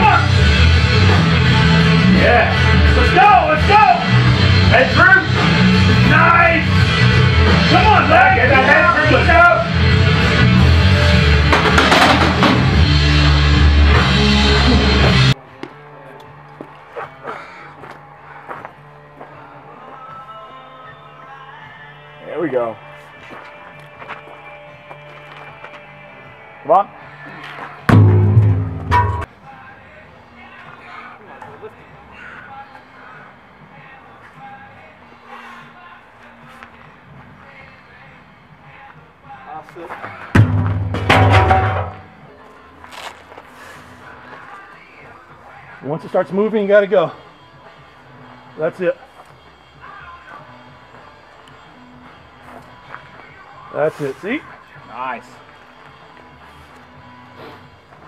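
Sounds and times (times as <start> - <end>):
rock music: 0.0 - 16.4, 27.8 - 29.4, 40.3 - 43.1
heavy thuds: 27.9 - 29.3, 40.3 - 42.2.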